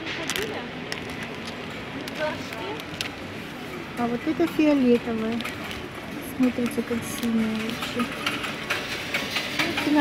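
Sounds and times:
busy shop background noise: 0:00.0 - 0:10.0
woman speaking: 0:02.0 - 0:02.8, 0:04.0 - 0:05.4, 0:06.2 - 0:08.1, 0:09.6 - 0:10.0.

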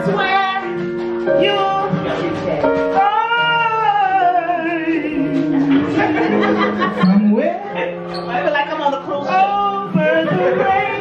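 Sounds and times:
held musical accompaniment: 0:00.0 - 0:11.0.

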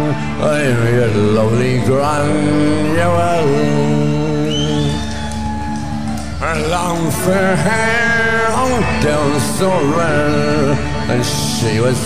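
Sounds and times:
folk-rock band playing: 0:00.0 - 0:12.0
person singing: 0:00.0 - 0:12.0.

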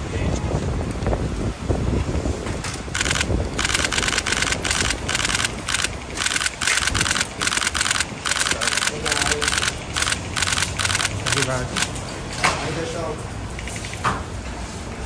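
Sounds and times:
camera shutters firing: 0:03.0 - 0:12.0
faint voices: 0:08.3 - 0:10.0.

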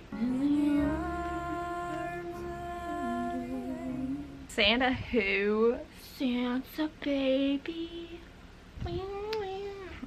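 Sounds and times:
woman humming: 0:00.1 - 0:04.5.

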